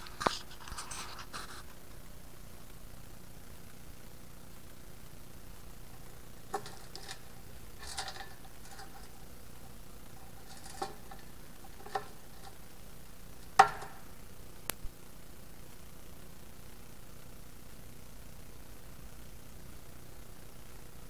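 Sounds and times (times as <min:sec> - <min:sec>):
metal cap clicking and clinking: 0:06.5 - 0:09.2, 0:10.2 - 0:12.6, 0:13.4 - 0:14.1.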